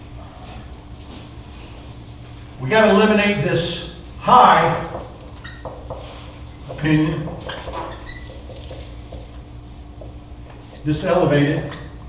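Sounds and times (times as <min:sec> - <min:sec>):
marker squeaking on whiteboard: 0:05.3 - 0:06.3, 0:07.4 - 0:08.6.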